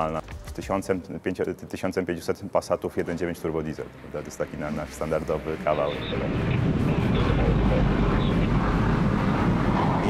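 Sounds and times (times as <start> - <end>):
jet engine roaring: 3.9 - 10.0.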